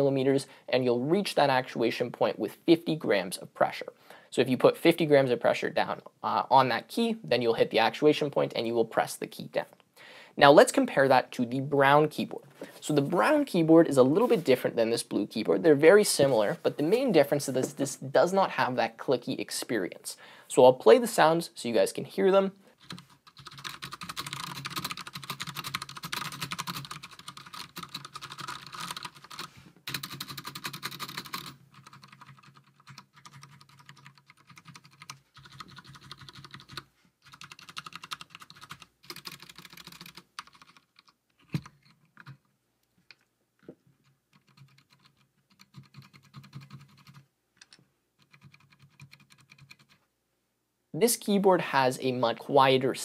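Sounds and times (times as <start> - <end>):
mechanical keyboard typing: 22.8 - 42.4, 44.3 - 47.2, 48.2 - 50.0.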